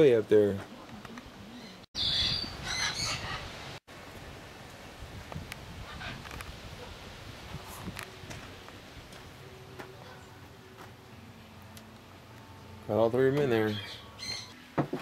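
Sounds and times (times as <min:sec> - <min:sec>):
bird calls: 0:01.5 - 0:03.5, 0:13.3 - 0:14.6.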